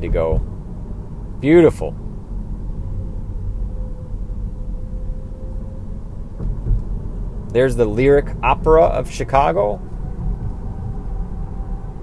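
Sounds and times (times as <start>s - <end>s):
road and tyre rumble in car: 0.0s - 12.0s.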